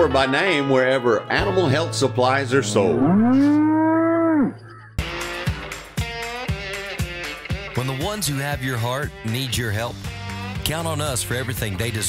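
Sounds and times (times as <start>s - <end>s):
cow mooing: 2.5s - 4.7s
guitar music with steady beat: 5.0s - 12.0s.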